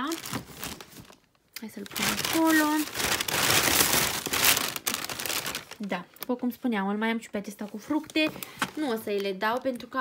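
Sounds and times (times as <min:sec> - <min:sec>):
plastic bag crinkling: 0:00.0 - 0:06.6, 0:07.7 - 0:10.0.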